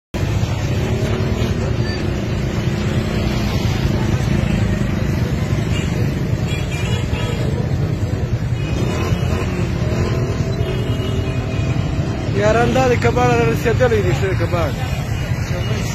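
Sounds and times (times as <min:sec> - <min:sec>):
motorcycle and car engines rumbling: 0:00.1 - 0:15.9
crowd voices: 0:00.2 - 0:15.9.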